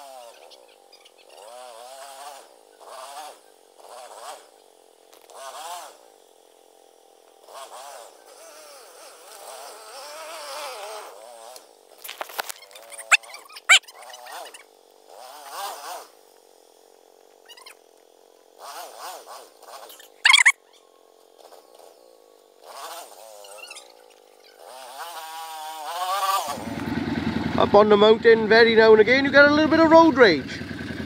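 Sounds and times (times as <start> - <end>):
quad bike engines revving: 0.0 - 31.0.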